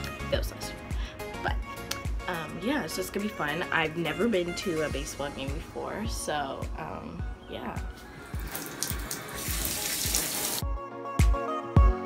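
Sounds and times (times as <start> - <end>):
background music with steady beat: 0.0 - 12.0
water running into bathtub: 8.2 - 10.6.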